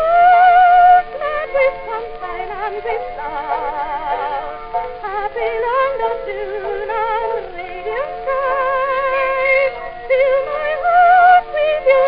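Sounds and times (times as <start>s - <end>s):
soprano singing with vibrato: 0.0s - 12.0s.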